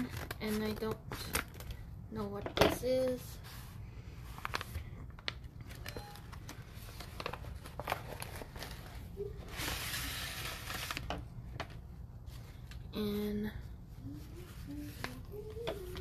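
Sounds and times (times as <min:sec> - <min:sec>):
paper crinkling and rustling: 0:03.0 - 0:12.8, 0:14.3 - 0:16.0
paper envelope tearing: 0:07.2 - 0:11.1.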